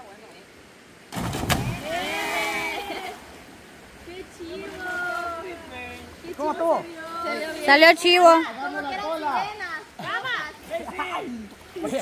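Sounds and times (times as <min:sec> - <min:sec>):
heavy splash into water: 0:01.1 - 0:03.3.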